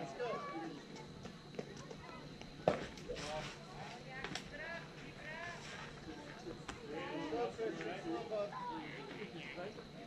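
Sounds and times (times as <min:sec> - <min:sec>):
voices calling out: 0:04.5 - 0:10.0.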